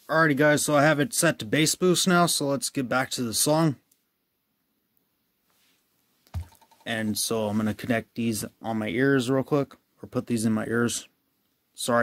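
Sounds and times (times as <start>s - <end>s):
phone set down on table: 6.4s - 6.8s.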